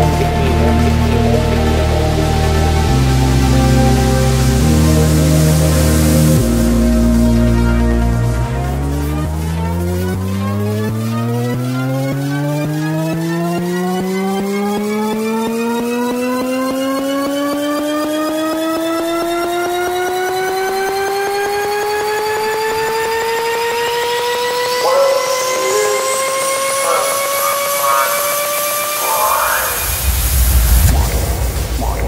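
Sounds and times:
rising noise sweep: 0.0 - 32.0
synth tone rising in pitch: 0.0 - 32.0.

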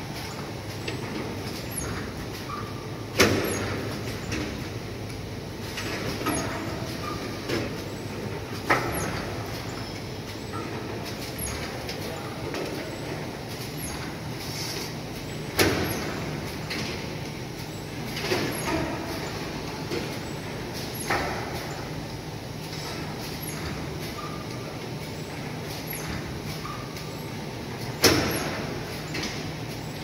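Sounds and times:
machine mechanical hum: 0.0 - 30.0.

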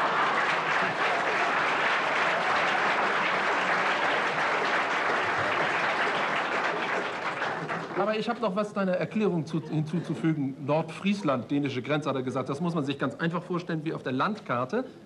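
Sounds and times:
audience applauding: 0.0 - 8.5.

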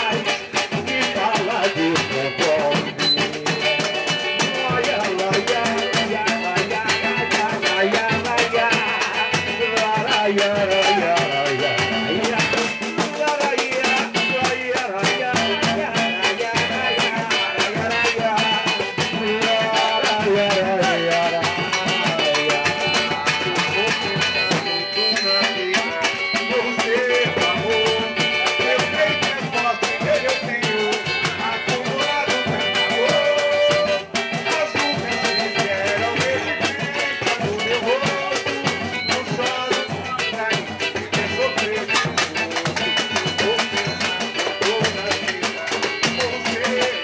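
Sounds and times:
man singing through microphone: 0.0 - 47.0
samba drums and percussion: 0.0 - 47.0
strummed cavaquinho: 0.0 - 47.0.

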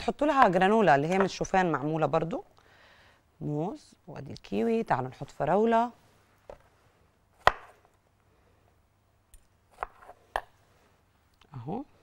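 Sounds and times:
knife chopping on cutting board: 7.4 - 7.8.

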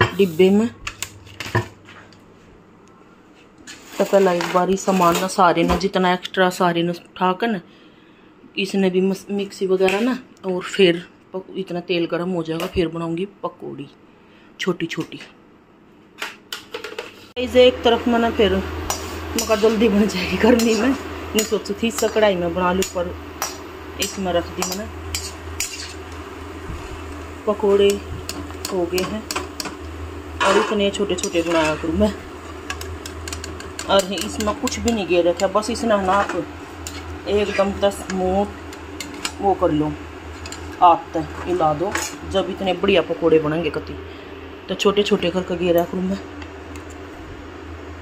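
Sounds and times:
steady low hum: 17.0 - 48.0.

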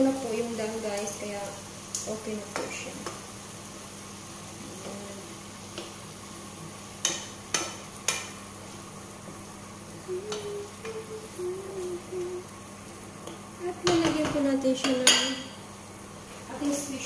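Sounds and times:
frying pan sizzling: 0.0 - 17.0
spoon knocking against pan: 7.0 - 8.4, 13.2 - 15.5.

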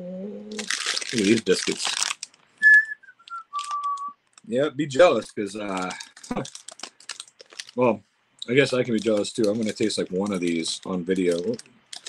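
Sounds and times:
person whistling: 2.6 - 4.2.

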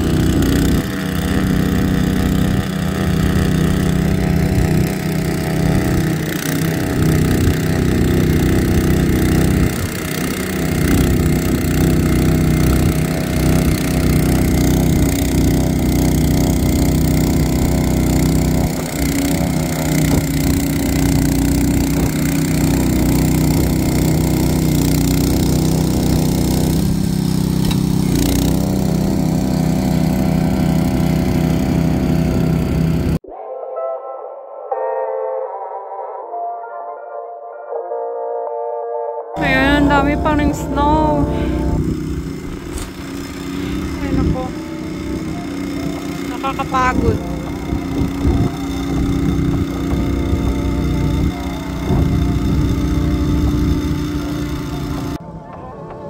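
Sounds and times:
snowblower engine running: 0.0 - 33.2, 39.4 - 55.3.

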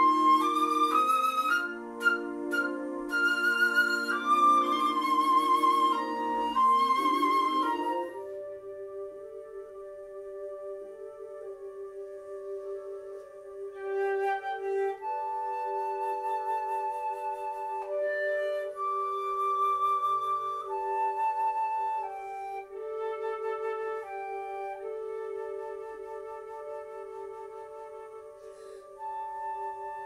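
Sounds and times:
flute playing long notes: 0.0 - 30.0.

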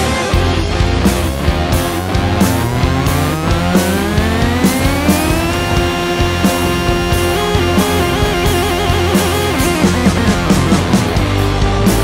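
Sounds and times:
progressive rock instrumental: 0.0 - 12.0
wavering lead melody: 0.3 - 11.7.

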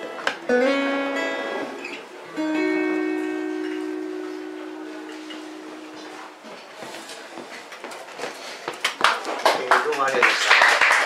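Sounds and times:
acoustic guitar chord ringing: 0.4 - 6.7.

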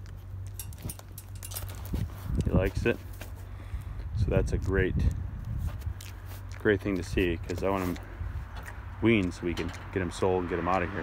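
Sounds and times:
calf chewing pellets: 0.0 - 9.9
steady low hum: 0.0 - 10.2.

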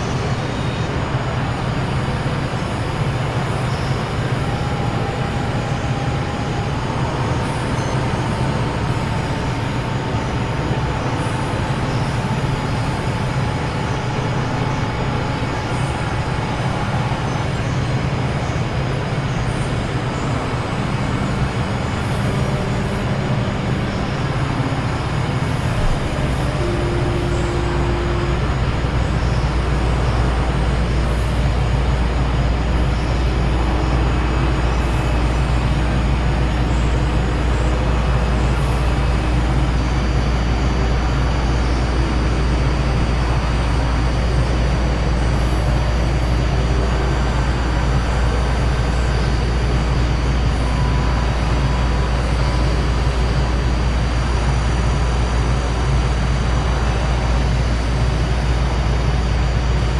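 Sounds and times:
dense noise wash: 0.0 - 59.9
low synthesizer drones: 0.0 - 59.9.

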